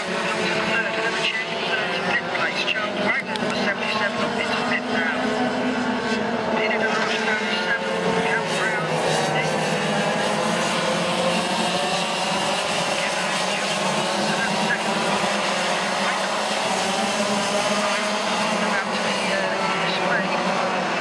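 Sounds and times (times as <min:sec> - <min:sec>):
kart engines droning: 0:00.0 - 0:21.0.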